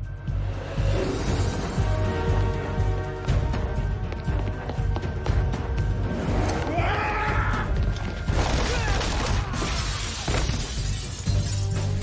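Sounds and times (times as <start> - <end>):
film score music: 0.0 - 12.0
glass shattering: 8.3 - 12.0.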